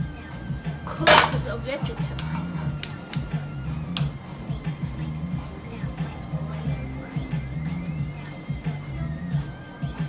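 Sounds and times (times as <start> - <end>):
background music: 0.0 - 10.0
metal cookware clattering: 0.9 - 2.9
sharp clicks: 2.2 - 4.2.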